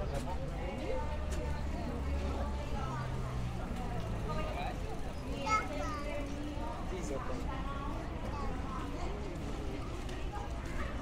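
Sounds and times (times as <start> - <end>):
passers-by chatting: 0.0 - 11.0.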